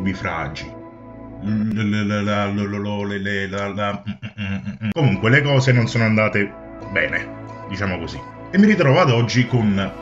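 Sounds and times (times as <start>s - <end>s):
low steady chant-like note: 0.6s - 2.9s.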